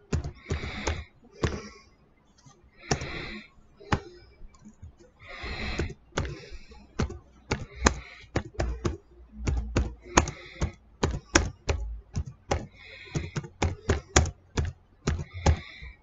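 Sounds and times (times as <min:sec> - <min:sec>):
typing taps on smartphone: 0:00.0 - 0:01.7, 0:02.8 - 0:16.0.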